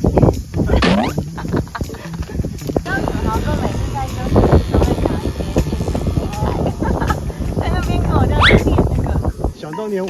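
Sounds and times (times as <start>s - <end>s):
people talking and laughing: 0.0s - 10.0s.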